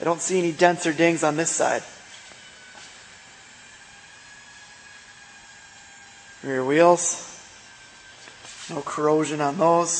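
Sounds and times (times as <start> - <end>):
thin high whine: 0.0 - 9.9.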